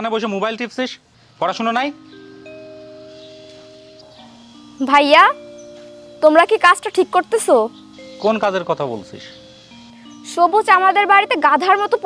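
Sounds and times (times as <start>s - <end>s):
drama score held notes: 1.6s - 12.0s.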